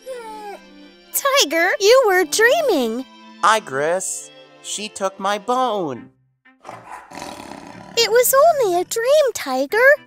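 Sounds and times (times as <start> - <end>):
cartoon animal roar: 6.7 - 9.0.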